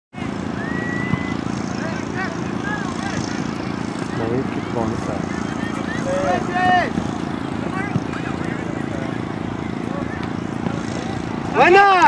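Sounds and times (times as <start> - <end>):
players shouting: 0.2 - 12.0.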